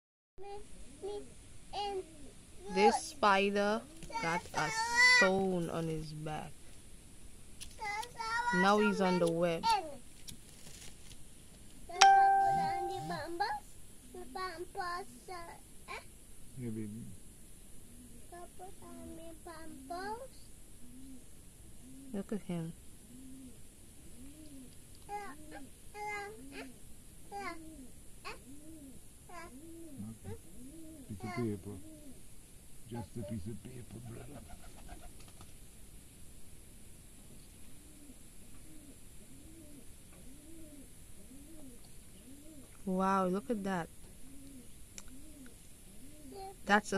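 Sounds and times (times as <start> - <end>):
child singing or calling: 0.4 - 3.2, 4.1 - 5.5, 7.8 - 10.0, 11.9 - 13.6, 14.2 - 16.0, 18.2 - 20.4, 25.1 - 26.7, 27.3 - 28.4, 29.3 - 30.4, 31.1 - 31.8, 32.9 - 33.6, 46.3 - 46.9
bell-like chime: 12.0 - 13.2
bird hooting: 12.0 - 13.6, 20.8 - 32.3, 37.6 - 46.7.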